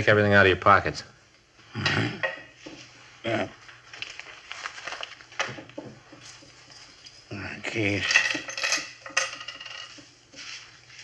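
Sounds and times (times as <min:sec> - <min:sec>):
man speaking: 0:03.2 - 0:03.6, 0:07.3 - 0:08.2
objects set down on table: 0:05.4 - 0:06.5.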